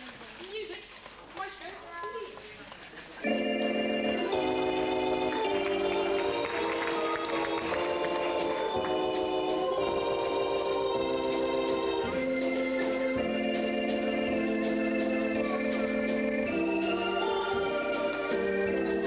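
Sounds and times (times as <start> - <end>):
faint voices: 0.0 - 19.0
organ music held chords: 3.2 - 19.0.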